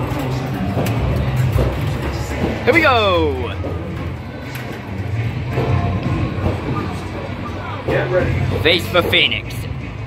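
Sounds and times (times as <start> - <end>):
ride soundtrack music: 0.0 - 10.0.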